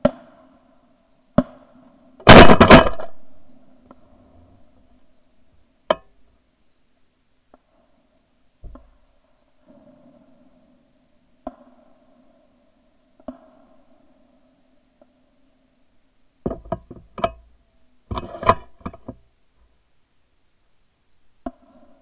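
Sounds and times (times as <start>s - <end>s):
faint steady hum: 0.0s - 22.0s
shotgun handling knocks and clicks: 16.5s - 17.4s.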